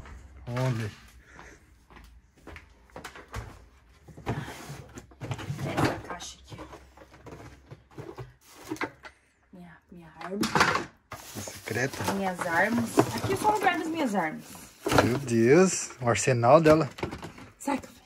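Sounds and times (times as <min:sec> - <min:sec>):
rummaging in cardboard box: 0:04.0 - 0:09.0, 0:11.1 - 0:16.2.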